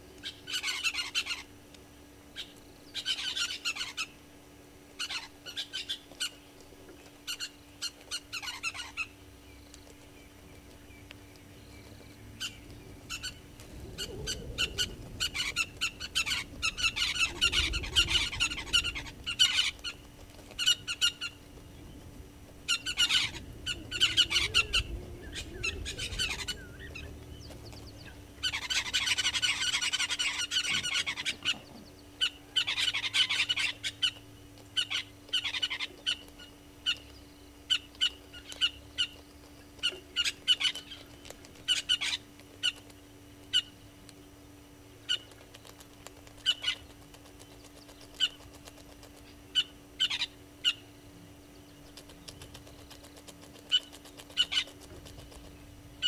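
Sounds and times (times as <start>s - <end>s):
faint low hum: 0.0s - 56.0s
birds chattering: 0.1s - 1.6s, 2.3s - 4.3s, 4.9s - 56.0s
short bird calls: 10.8s - 21.9s, 22.6s - 39.2s.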